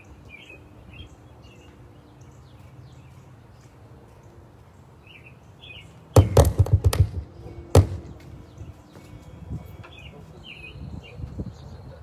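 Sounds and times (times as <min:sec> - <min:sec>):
amplified pops and thumps: 0:06.2 - 0:08.2.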